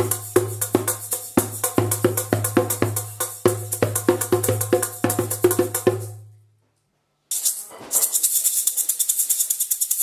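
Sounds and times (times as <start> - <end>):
djembe hand strikes: 0.0 - 6.2.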